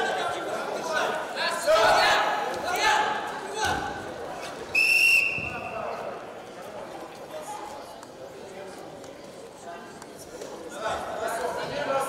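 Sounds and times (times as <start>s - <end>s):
voices in echoing hall: 0.0s - 12.0s
referee whistle blast: 4.7s - 5.7s.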